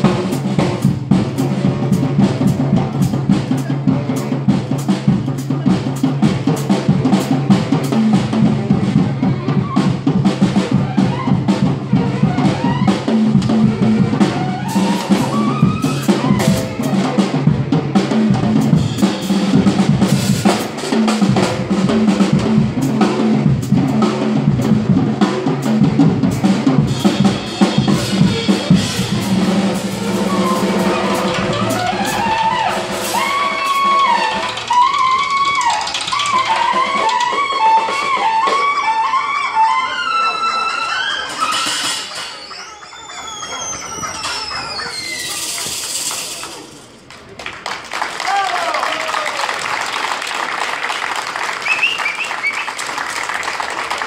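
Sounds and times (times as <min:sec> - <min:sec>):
drum kit playing: 0:00.0 - 0:39.2.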